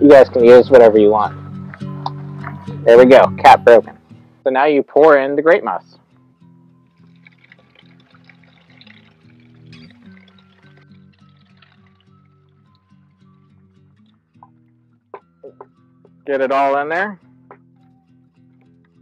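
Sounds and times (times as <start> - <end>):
soft background music: 0.0 - 19.0
liquid pouring from plastic bucket: 6.8 - 13.1.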